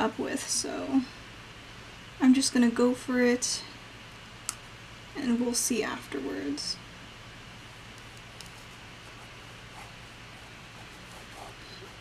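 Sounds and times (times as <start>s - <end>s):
low room hum: 0.0s - 12.0s
fingers handling paper: 8.0s - 12.0s.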